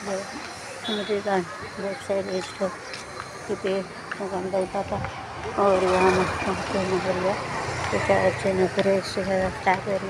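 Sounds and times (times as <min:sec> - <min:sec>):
street traffic: 0:00.0 - 0:10.0
person talking: 0:03.5 - 0:10.0.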